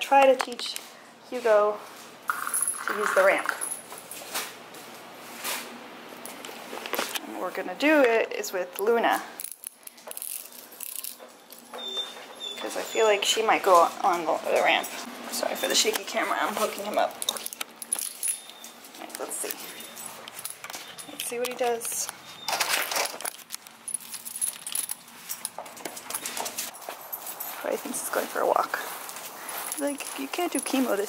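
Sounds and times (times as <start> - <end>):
metal chain leash clinking: 2.3 - 4.2, 9.4 - 31.0.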